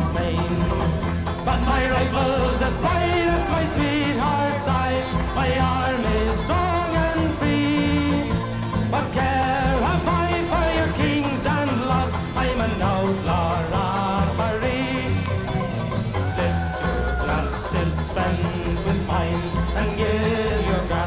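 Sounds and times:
man singing: 0.0s - 15.6s, 16.2s - 21.0s
strummed acoustic instruments: 0.0s - 21.0s.

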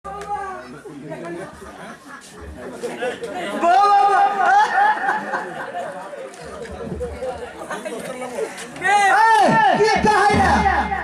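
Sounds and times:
people talking: 0.1s - 11.0s.

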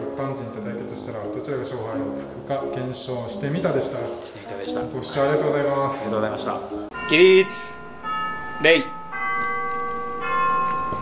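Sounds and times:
bell-like chime tones: 6.9s - 11.0s.

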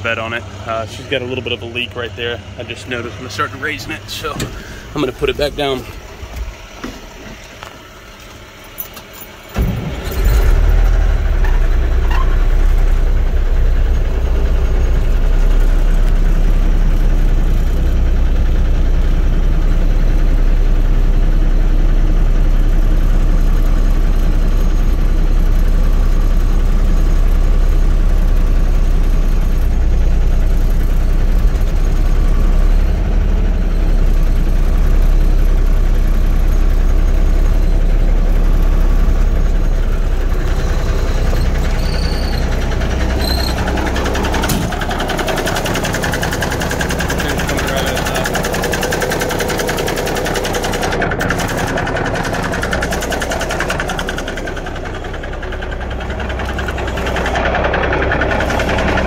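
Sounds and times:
diesel truck engine rumbling: 0.0s - 59.0s.

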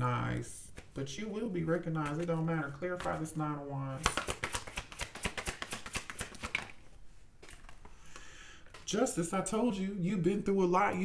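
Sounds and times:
cards being shuffled: 1.8s - 8.0s.

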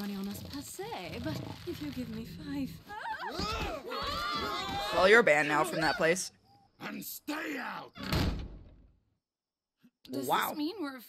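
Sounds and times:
heavy door slamming: 8.0s - 8.8s.

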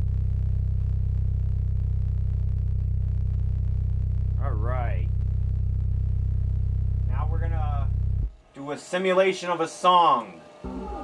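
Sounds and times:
subwoofer deep bass tone: 0.0s - 8.4s.

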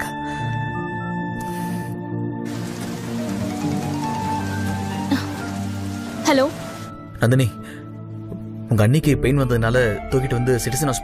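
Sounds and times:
sustained film score music: 0.0s - 11.0s
steady rain hiss: 2.5s - 7.0s.

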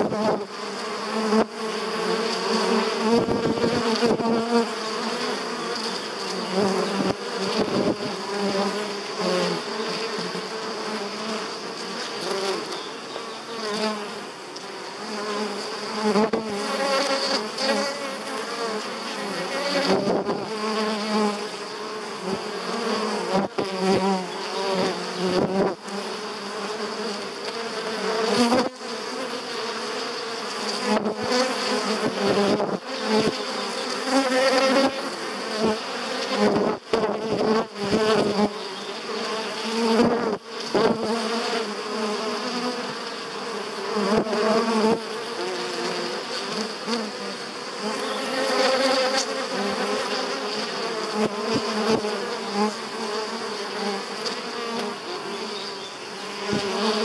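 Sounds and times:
honeybees buzzing: 0.0s - 57.0s.

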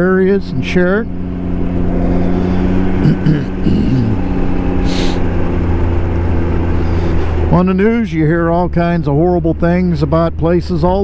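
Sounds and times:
motorcycle engine cruising: 0.0s - 11.0s.

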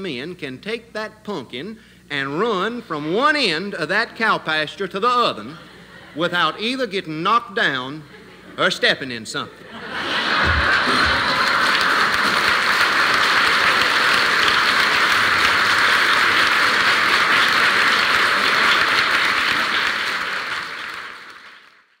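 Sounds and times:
audience applauding: 10.0s - 22.0s.

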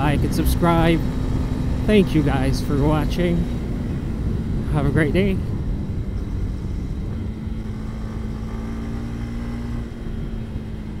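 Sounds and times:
motorcycle engine: 0.0s - 11.0s
road and wind rumble: 0.0s - 11.0s.

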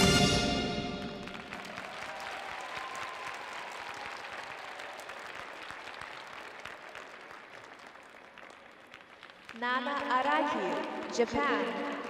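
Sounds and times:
audience applauding: 0.8s - 12.0s.

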